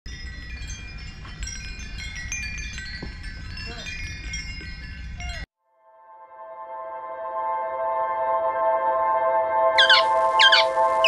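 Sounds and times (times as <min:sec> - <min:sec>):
metal wind chimes ringing: 0:00.1 - 0:05.5.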